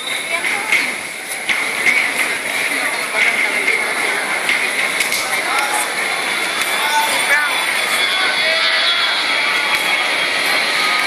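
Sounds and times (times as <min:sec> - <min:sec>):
crowd murmuring: 0:00.0 - 0:11.0.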